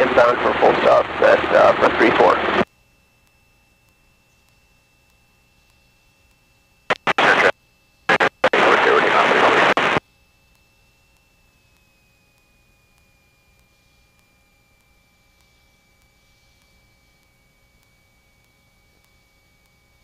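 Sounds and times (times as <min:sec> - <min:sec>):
static-filled radio transmission: 0:00.0 - 0:02.7, 0:06.9 - 0:10.0
faint electronic whine: 0:00.0 - 0:20.0.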